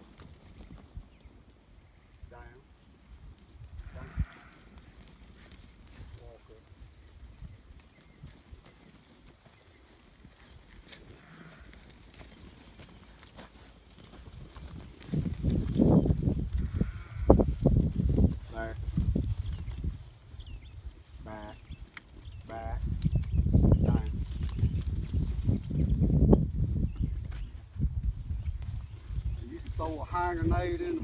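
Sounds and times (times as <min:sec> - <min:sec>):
hoof thuds and shuffling: 0:00.0 - 0:01.8, 0:02.8 - 0:31.0.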